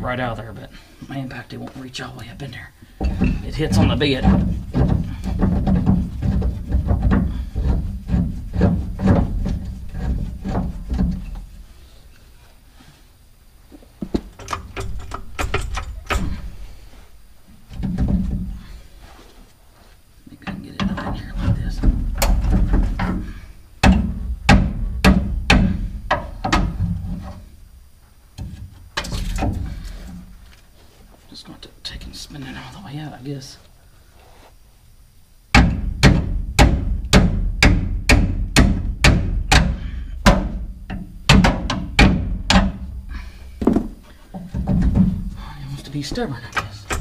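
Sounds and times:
metal clicks and knocks from hand tools: 0:14.3 - 0:16.4.

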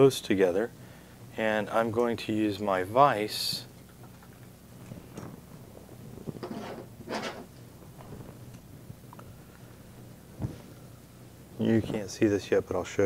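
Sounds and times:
soft scrapes: 0:06.2 - 0:08.4.

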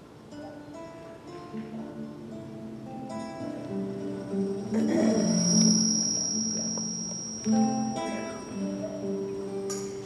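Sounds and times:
plucked string film music: 0:00.3 - 0:10.0
steady high-pitched tone: 0:02.0 - 0:10.0.

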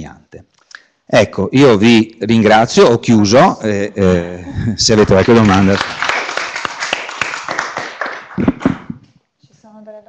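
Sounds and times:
audience clapping: 0:04.8 - 0:09.0
loud thumps: 0:08.4 - 0:09.1.

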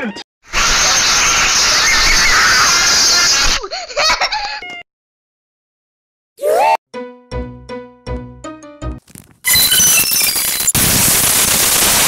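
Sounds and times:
harsh distorted screeching blast: 0:00.5 - 0:03.6, 0:09.5 - 0:12.0
short voice-like squeaks: 0:09.4 - 0:10.7.

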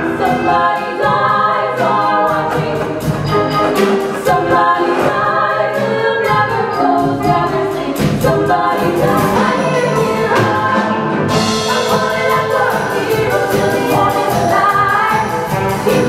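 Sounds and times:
group singing show tune: 0:00.0 - 0:16.0
instrumental backing: 0:00.0 - 0:16.0.

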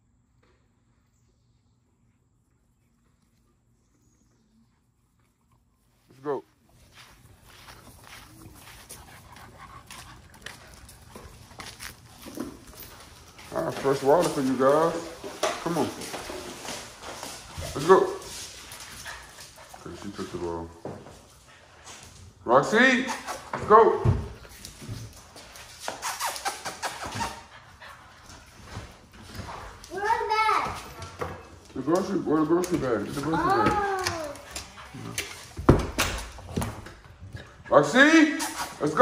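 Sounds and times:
dog paws scuffing and clicking: 0:04.8 - 0:39.0
dog whining: 0:26.0 - 0:27.5.

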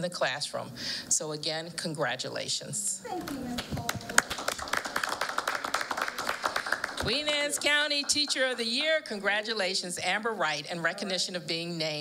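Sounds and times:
group clapping: 0:03.2 - 0:09.0.

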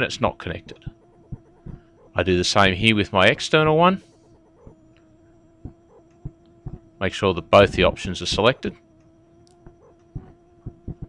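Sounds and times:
faint low hum: 0:00.0 - 0:11.0
soft thumps: 0:01.3 - 0:01.9, 0:05.6 - 0:06.9.

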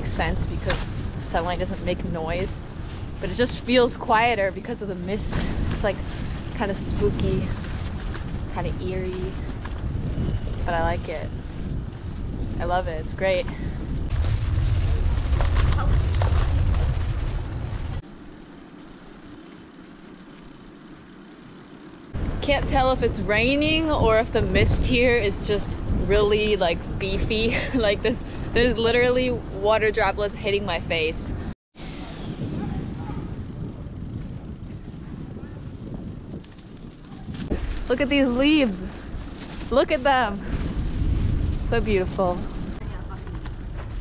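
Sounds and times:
wind buffeting microphone: 0:00.0 - 0:21.2, 0:22.1 - 0:44.0.

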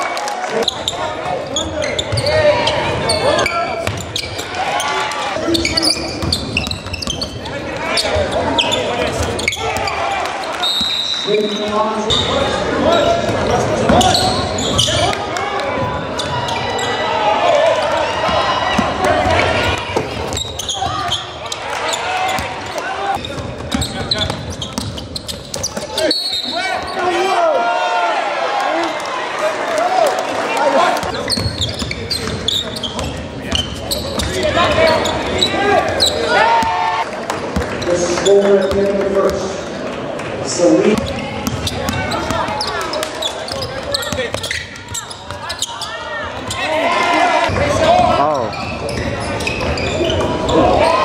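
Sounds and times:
voices in a hall: 0:00.0 - 0:51.0
shoes squeaking on hardwood floor: 0:00.6 - 0:15.2, 0:18.3 - 0:27.2, 0:31.0 - 0:37.0, 0:37.6 - 0:39.4, 0:40.9 - 0:46.9, 0:47.8 - 0:51.0.

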